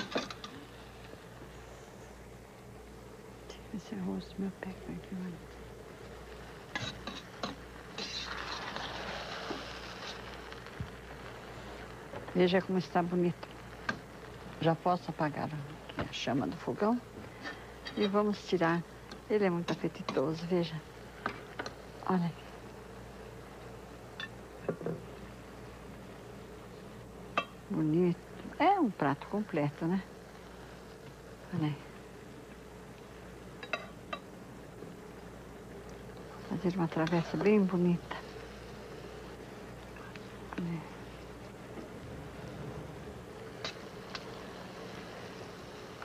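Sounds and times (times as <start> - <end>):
rice pot hissing: 0.0 - 46.0
steady low hum: 0.0 - 46.0
spoon scraping a steel pot: 6.8 - 9.2.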